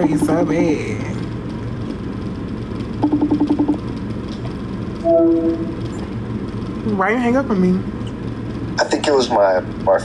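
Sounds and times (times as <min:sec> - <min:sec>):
steady low hum: 0:00.0 - 0:10.0
phone short beeps: 0:05.0 - 0:05.8.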